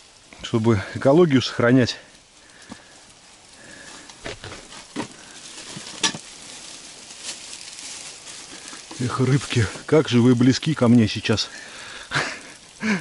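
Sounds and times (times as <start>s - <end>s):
fish sizzling in a pan: 0.0s - 13.0s.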